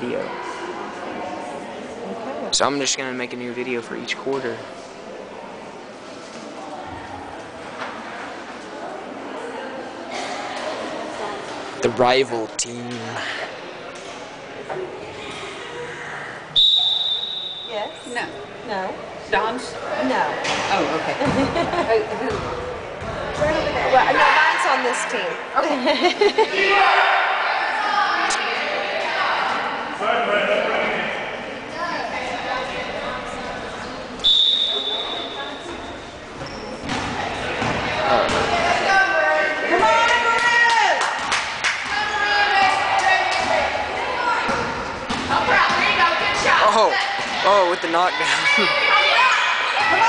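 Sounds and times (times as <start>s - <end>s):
low chatter of people: 0.0s - 50.0s
spectators' voices: 0.0s - 50.0s
referee's whistle blast: 16.6s - 17.8s, 34.2s - 35.4s.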